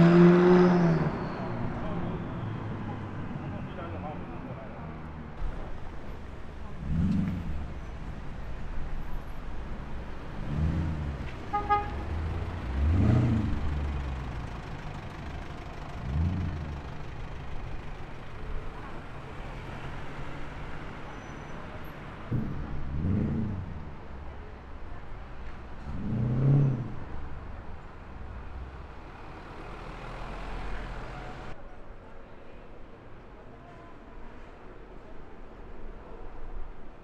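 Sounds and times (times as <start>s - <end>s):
cars accelerating past: 0.0s - 3.9s, 5.2s - 31.6s
short car horn toot: 11.5s - 12.2s.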